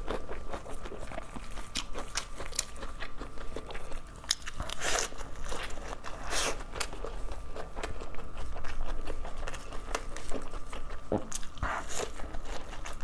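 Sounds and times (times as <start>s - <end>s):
chewing with wet mouth clicks: 0.0s - 13.0s
lettuce crunch: 0.0s - 13.0s.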